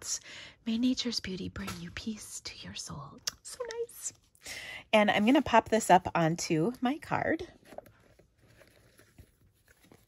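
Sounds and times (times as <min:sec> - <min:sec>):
paper being handled: 0:07.6 - 0:10.0.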